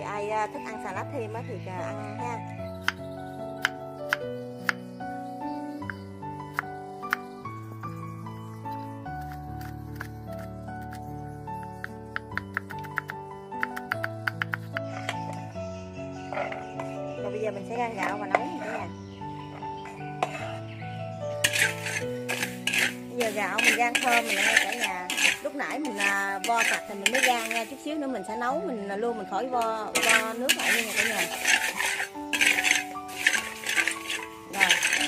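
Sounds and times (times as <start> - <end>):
background music: 0.0 - 35.0
spatula scraping rice in a wok: 16.2 - 17.0, 17.9 - 18.9, 19.5 - 20.7, 21.4 - 27.9, 29.9 - 35.0.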